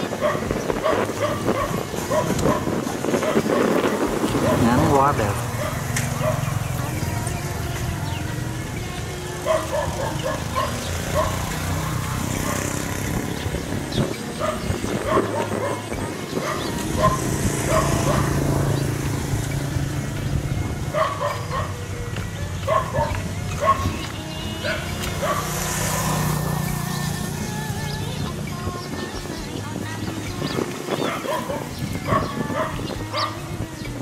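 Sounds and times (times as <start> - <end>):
animals giving sharp calls: 9.4 - 19.0, 20.8 - 21.9, 30.4 - 34.0.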